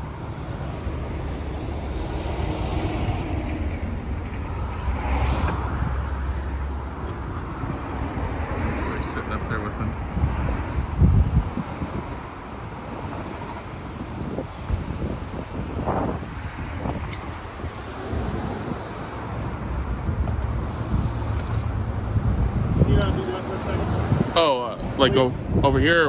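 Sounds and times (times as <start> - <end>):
street traffic hum: 0.0 - 26.0
wind buffeting microphone: 0.0 - 26.0.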